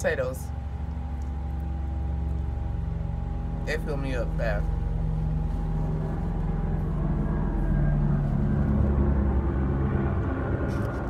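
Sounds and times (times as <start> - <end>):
faint constant whine: 0.0 - 11.0
low mechanical drone: 0.0 - 11.0.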